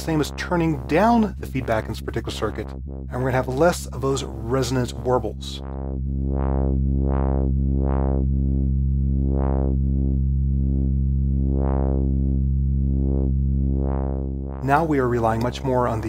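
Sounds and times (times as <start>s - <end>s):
low synthesizer note with filter sweeps: 0.0s - 16.0s.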